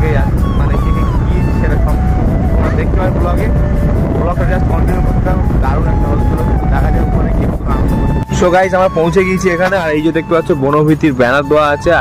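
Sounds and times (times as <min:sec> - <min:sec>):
song melody playing: 0:00.0 - 0:12.0
vehicle rumbling: 0:00.0 - 0:12.0.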